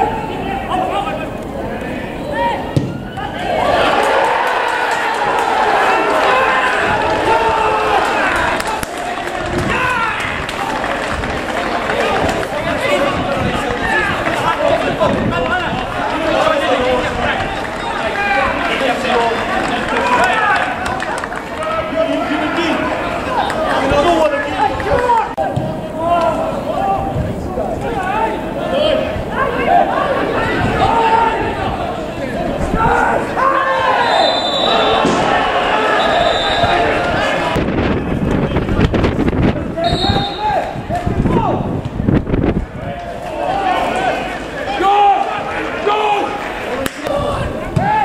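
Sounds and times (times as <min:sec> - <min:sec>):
men shouting and calling: 0:00.0 - 0:37.6, 0:42.8 - 0:48.0
ball kick thud: 0:02.7 - 0:03.2.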